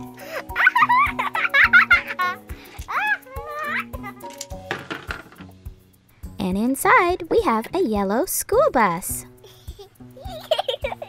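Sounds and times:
soft background music: 0.0 - 11.0
keys knocking together: 4.2 - 5.6.

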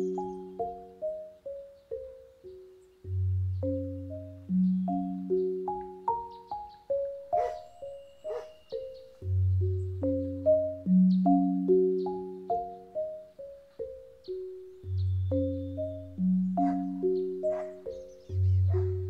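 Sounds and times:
marimba arpeggios: 0.0 - 19.0.

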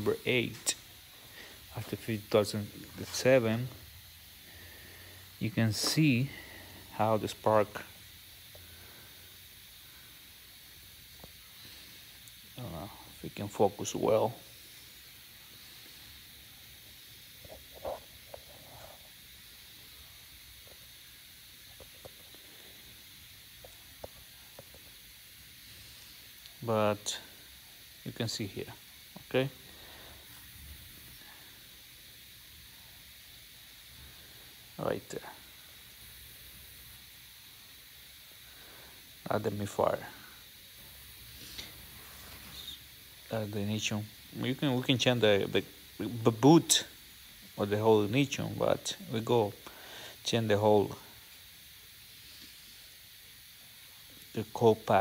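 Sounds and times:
room tone hiss: 0.0 - 55.0.

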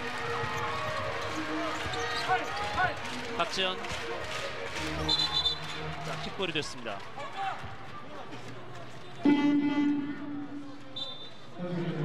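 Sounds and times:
crowd noise: 0.0 - 12.0
arena horn buzzing: 9.2 - 10.5.

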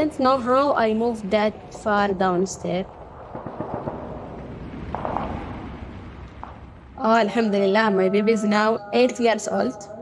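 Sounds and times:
low rumble: 0.0 - 8.7
explosions: 2.8 - 7.6
gunshots crackling: 3.0 - 7.0.

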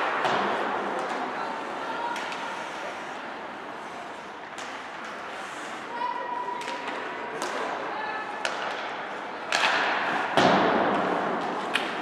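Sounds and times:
hockey sticks clacking on puck: 0.0 - 1.4, 2.0 - 2.8, 4.4 - 5.4, 6.6 - 7.8, 8.4 - 12.0.

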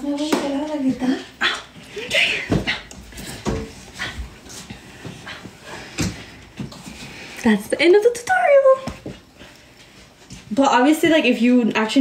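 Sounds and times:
woman's voice: 0.0 - 2.6, 7.4 - 9.1, 10.5 - 12.0.

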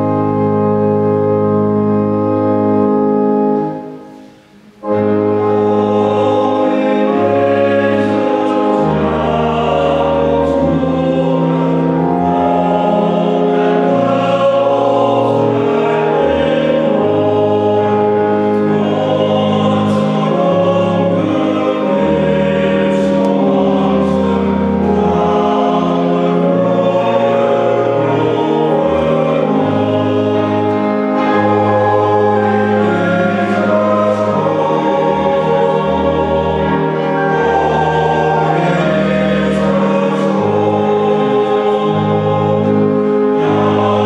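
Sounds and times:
men's choir singing a hymn: 0.0 - 44.0
organ accompaniment: 0.0 - 44.0.

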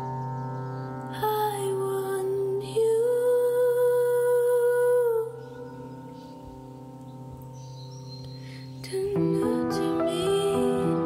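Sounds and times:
low sustained accompaniment: 0.0 - 11.0.

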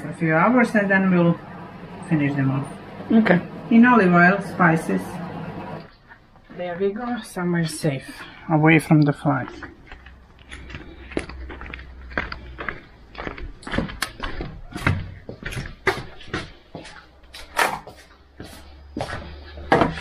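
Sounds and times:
footsteps: 5.8 - 20.0.

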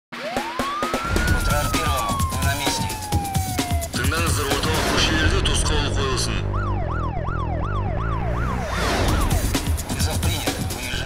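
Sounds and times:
siren wail: 0.1 - 9.5
theme music with heavy bass: 0.1 - 11.0.

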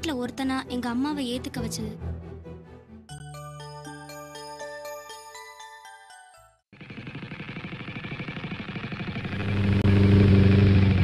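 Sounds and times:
motorcycle engine running: 6.7 - 11.0.

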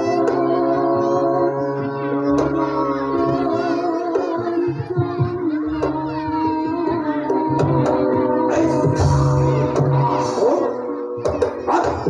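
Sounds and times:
voice sliding in pitch: 0.0 - 12.0
drumming: 2.2 - 12.0.

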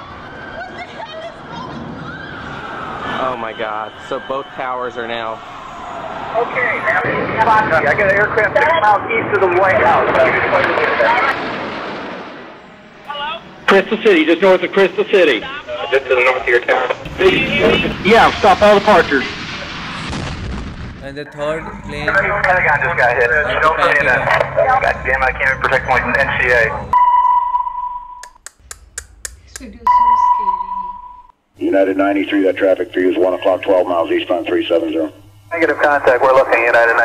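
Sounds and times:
jet aircraft passing overhead: 0.0 - 27.0
steady electronic beep tone: 3.1 - 5.3, 23.3 - 28.4, 29.8 - 31.3
man's voice: 13.7 - 19.5, 21.0 - 26.9, 31.6 - 37.0
sharp electronic ticks: 28.2 - 30.7.

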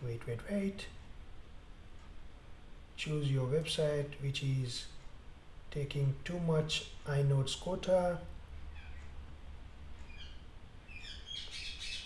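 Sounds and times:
low steady hum: 0.0 - 12.0
bird chirping: 8.7 - 9.2, 10.0 - 12.0.

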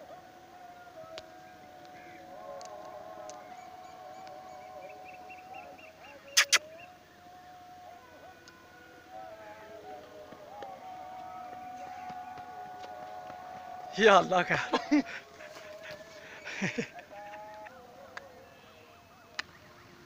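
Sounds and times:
quick high chirps: 6.3 - 6.8
sharp clicks: 6.4 - 6.6.

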